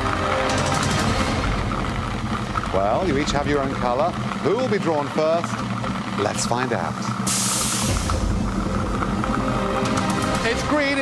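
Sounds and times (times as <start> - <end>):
low rumble: 0.0 - 4.9, 7.0 - 11.0
tension music drone: 0.0 - 11.0
air hiss: 7.2 - 8.4.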